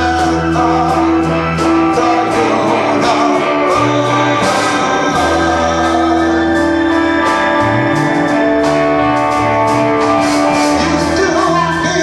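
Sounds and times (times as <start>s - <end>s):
bass line: 0.0s - 12.0s
drums with cymbals: 0.0s - 12.0s
electric guitar holding notes: 0.0s - 12.0s.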